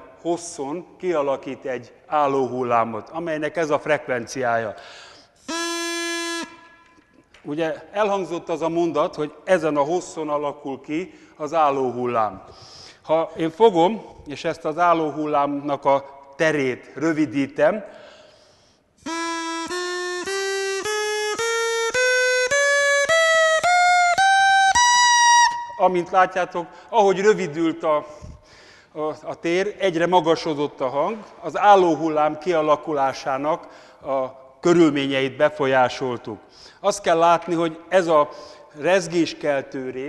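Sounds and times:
buzzy straw reed horn note: 0:05.4 - 0:06.9, 0:19.0 - 0:22.5.

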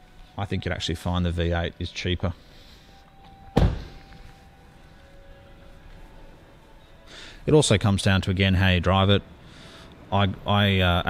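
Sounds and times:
car door shutting: 0:03.2 - 0:04.2.

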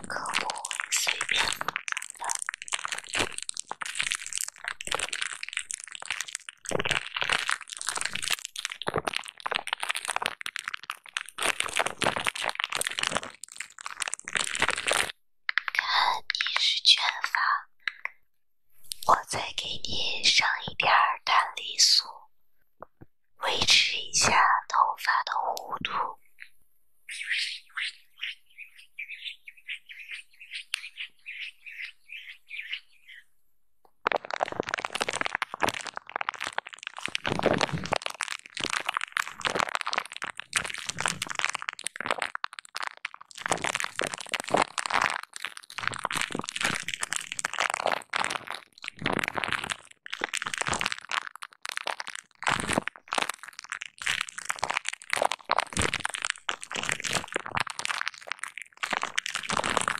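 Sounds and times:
quick squishes: 0:00.0 - 0:16.0, 0:27.1 - 0:33.2, 0:34.0 - 0:59.9
fingers crinkling bubble wrap: 0:00.0 - 0:18.2, 0:18.8 - 0:21.8, 0:23.4 - 0:26.5, 0:27.1 - 0:33.2, 0:33.9 - 0:59.9.

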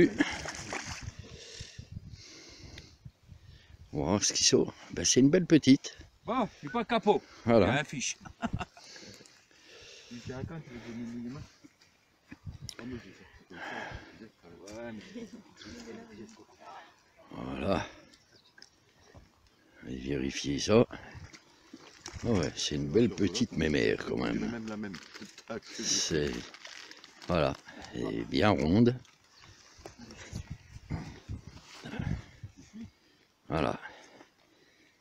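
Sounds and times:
water splashing around net: 0:00.2 - 0:01.1, 0:21.3 - 0:22.4
wind buffeting microphone: 0:00.9 - 0:04.0, 0:12.4 - 0:12.7, 0:30.1 - 0:32.8
murmured voice and grunts: 0:30.0 - 0:34.2.

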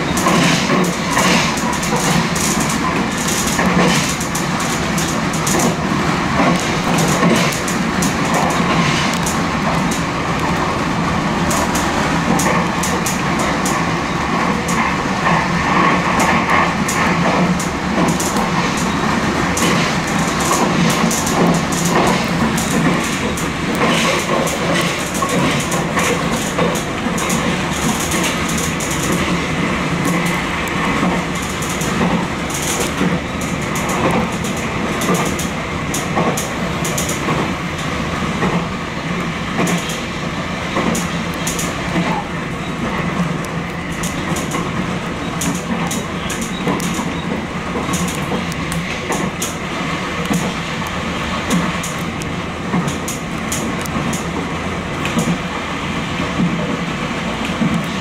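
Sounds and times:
wheels clicking over rail joints: 0:00.0 - 0:55.6
electric train running: 0:00.0 - 0:58.0.

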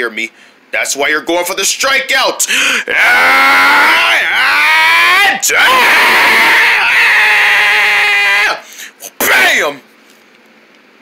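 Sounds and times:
person screaming high-pitched: 0:02.8 - 0:09.7.

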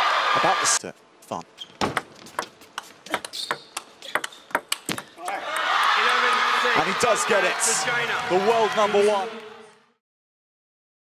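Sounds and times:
crowd cheering and shouting: 0:00.0 - 0:00.8, 0:05.2 - 0:09.8
table tennis ball clicks: 0:01.9 - 0:05.4.

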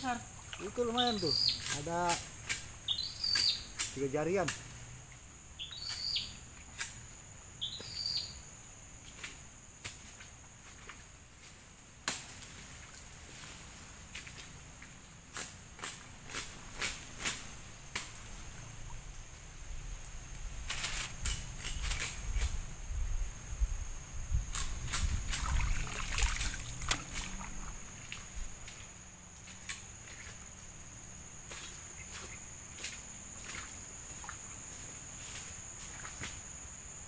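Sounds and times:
high insect drone: 0:00.0 - 0:37.0
water sloshing and splashing: 0:00.3 - 0:01.8, 0:24.6 - 0:28.6
bird chirping: 0:00.6 - 0:02.2, 0:02.8 - 0:03.8, 0:05.6 - 0:06.4, 0:07.6 - 0:08.4.

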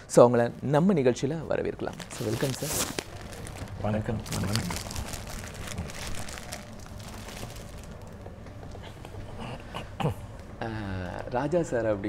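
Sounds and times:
plastic wrapping crinkling: 0:01.8 - 0:08.3.

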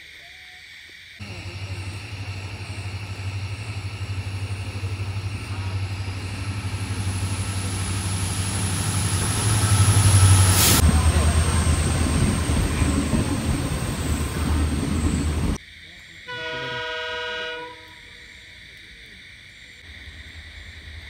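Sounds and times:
high steady whine: 0:01.2 - 0:15.6
train engine rumble: 0:01.2 - 0:21.0.

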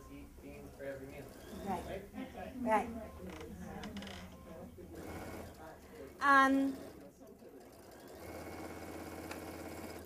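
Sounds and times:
sewing machine stitching: 0:06.2 - 0:10.0.

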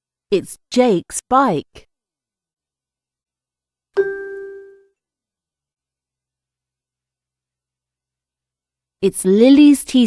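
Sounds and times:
chime note ringing: 0:04.0 - 0:04.9.

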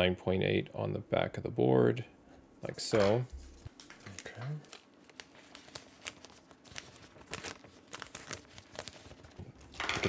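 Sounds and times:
plastic bag crinkling: 0:03.6 - 0:10.0.

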